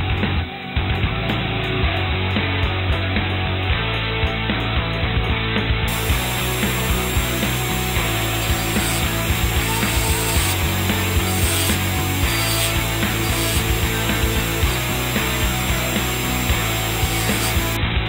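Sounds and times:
rotary tool grinding steel: 0:05.9 - 0:17.8.

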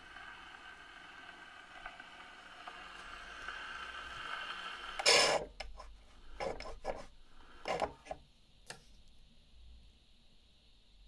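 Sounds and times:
record surface hiss: 0:00.0 - 0:11.0.

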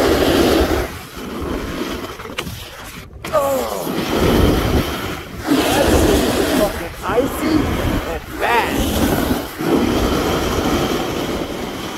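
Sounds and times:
snowboard scraping over icy snow: 0:00.0 - 0:11.9
wind rushing over microphone: 0:00.0 - 0:11.9.

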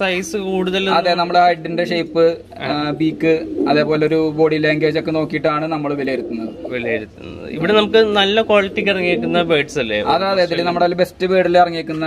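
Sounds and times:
man speaking: 0:00.0 - 0:12.0
pigeons cooing: 0:00.2 - 0:09.7.

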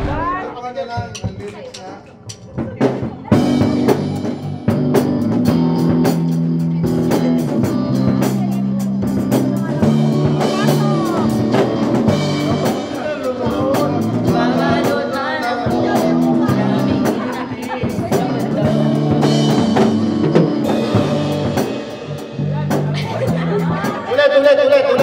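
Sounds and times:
drum hits: 0:00.0 - 0:15.0, 0:15.8 - 0:24.1
live rock band playing: 0:02.4 - 0:25.0
person's voice: 0:08.4 - 0:11.5.

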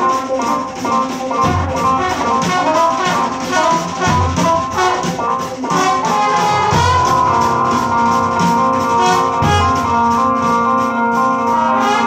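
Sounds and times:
drums: 0:00.0 - 0:12.0
keyboard: 0:00.0 - 0:12.0
trombone: 0:00.0 - 0:12.0.

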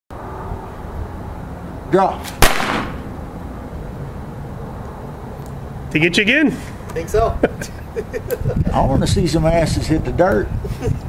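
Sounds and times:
low outdoor background rumble: 0:00.2 - 0:06.4
man speaking: 0:01.9 - 0:02.2, 0:05.9 - 0:07.5.

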